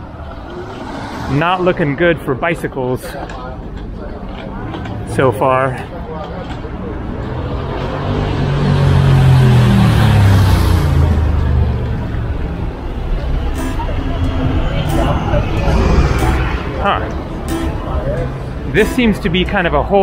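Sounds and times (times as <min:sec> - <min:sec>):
motor vehicle passing: 0:00.0 - 0:02.4, 0:03.0 - 0:19.5.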